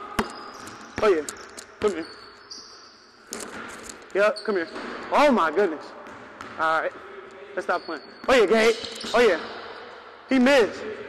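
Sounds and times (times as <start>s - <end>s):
basketball bouncing on wooden floor: 6.0s - 6.6s.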